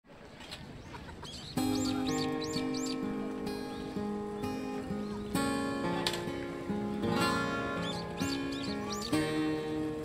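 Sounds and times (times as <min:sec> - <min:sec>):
bird chirping: 0:00.7 - 0:06.1, 0:07.1 - 0:09.6
acoustic guitar chord ringing: 0:01.6 - 0:10.0.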